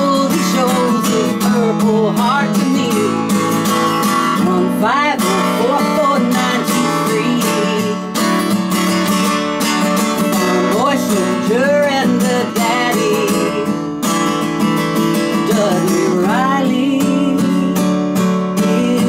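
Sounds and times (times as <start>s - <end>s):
person singing wordless melody: 0.0s - 8.3s, 10.2s - 13.9s, 15.2s - 19.0s
acoustic guitar strumming: 0.0s - 19.0s.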